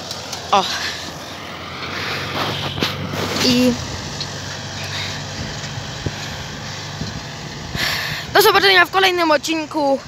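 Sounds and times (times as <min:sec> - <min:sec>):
tractor diesel engine running: 0:00.0 - 0:10.0.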